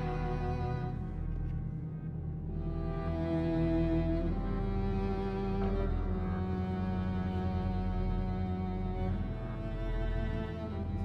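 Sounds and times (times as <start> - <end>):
low sustained string drone: 0.0 - 11.0.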